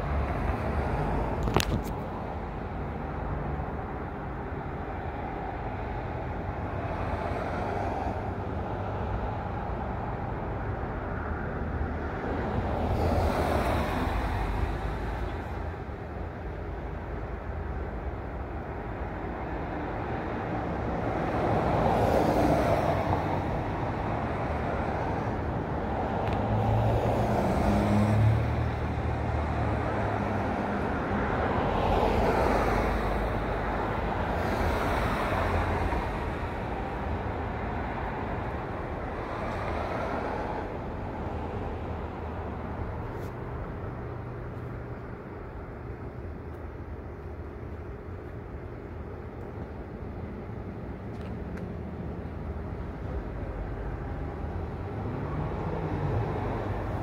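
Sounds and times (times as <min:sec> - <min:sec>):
vehicles passing: 0:00.0 - 0:57.0.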